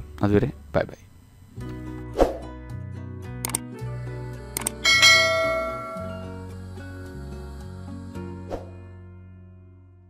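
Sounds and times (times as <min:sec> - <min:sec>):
soft background music: 0:00.0 - 0:10.0
quick swoosh: 0:02.2 - 0:02.4
sharp clicks: 0:03.4 - 0:03.7, 0:04.5 - 0:04.8
bell ding: 0:04.8 - 0:06.4.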